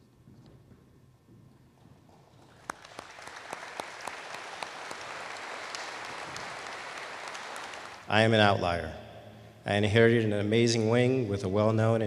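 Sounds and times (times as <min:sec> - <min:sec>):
audience applause: 0:02.5 - 0:08.1.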